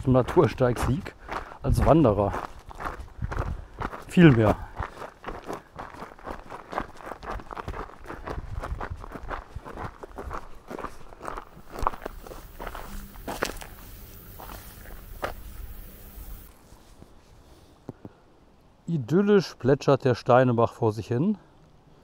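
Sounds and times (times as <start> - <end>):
footsteps crunching on gravel: 0.2 - 17.0
faint hiss: 11.4 - 18.3.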